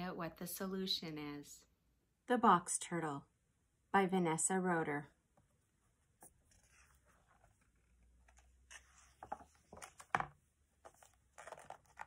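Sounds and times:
paper pages rustling: 6.2 - 12.0.

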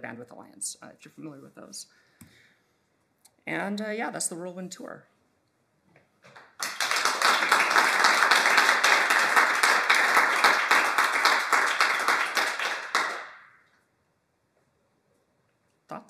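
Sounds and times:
audience applauding: 6.3 - 13.5.

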